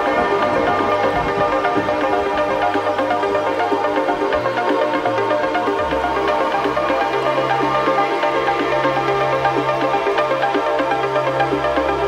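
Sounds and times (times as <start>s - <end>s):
electronic beat: 0.0s - 12.0s
repeating synth notes: 0.0s - 12.0s.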